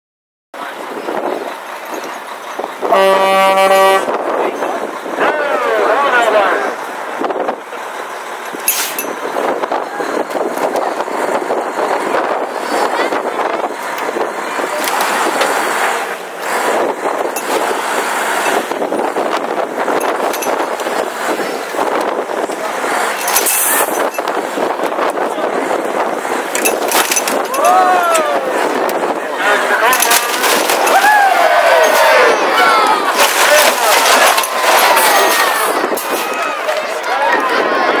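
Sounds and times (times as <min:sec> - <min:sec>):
vehicle engine noise: 0:00.6 - 0:38.0
crowd cheering and shouting: 0:00.7 - 0:08.3, 0:27.2 - 0:38.0.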